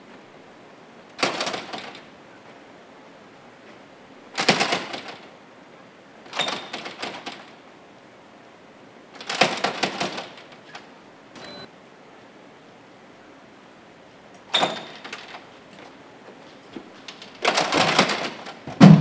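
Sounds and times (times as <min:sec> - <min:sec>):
glass doors rattling in frame: 0:01.2 - 0:02.2, 0:04.3 - 0:05.4, 0:06.2 - 0:07.6, 0:09.1 - 0:10.9, 0:14.5 - 0:15.9, 0:17.1 - 0:19.0.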